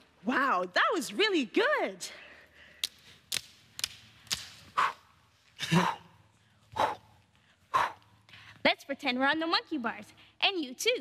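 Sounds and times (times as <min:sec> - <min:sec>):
sharp hand claps: 0:02.8 - 0:04.7.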